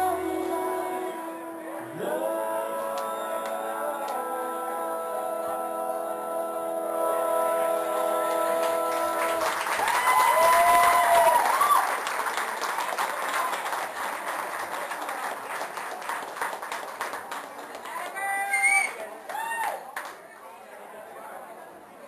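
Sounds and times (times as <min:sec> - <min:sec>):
audience clapping: 0:02.8 - 0:04.2, 0:07.6 - 0:20.3
shouted cheers: 0:09.2 - 0:12.0, 0:17.9 - 0:20.0.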